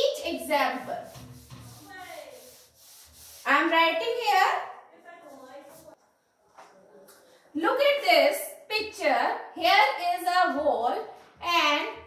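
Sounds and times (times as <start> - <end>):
duster rubbing on whiteboard: 0.2 - 4.2, 5.3 - 6.0.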